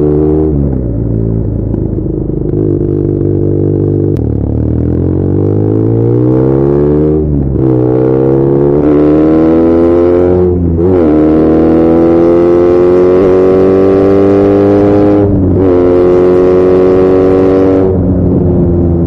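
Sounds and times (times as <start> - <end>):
motorcycle engine accelerating: 0.0 - 19.0.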